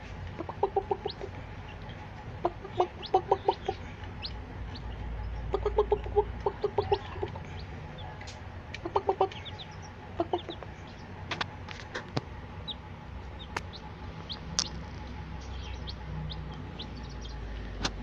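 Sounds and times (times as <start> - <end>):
chicks peeping: 0.0 - 18.0
low clucking calls: 0.3 - 18.0
beaks pecking on steel plate: 0.4 - 17.4.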